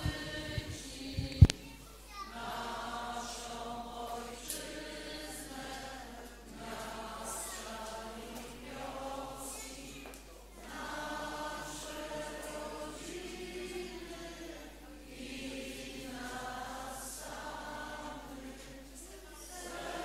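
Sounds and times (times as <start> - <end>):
voices singing a hymn: 0.0 - 20.0.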